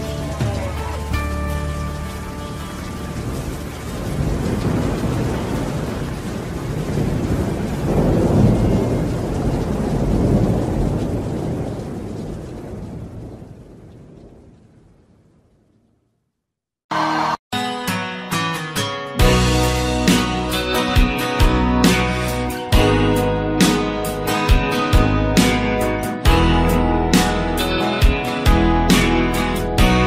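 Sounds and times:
steady rain: 0.0 - 16.2, 19.2 - 30.0
rolling thunder: 3.1 - 16.0.

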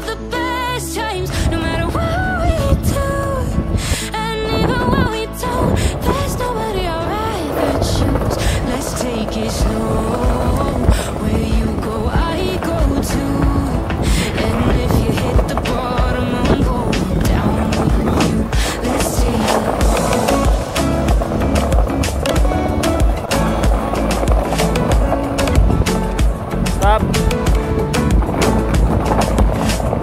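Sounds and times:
music track: 0.0 - 30.0
skateboard wheels rolling on asphalt: 1.3 - 30.0
skateboard clicks and clacks: 7.2 - 30.0.

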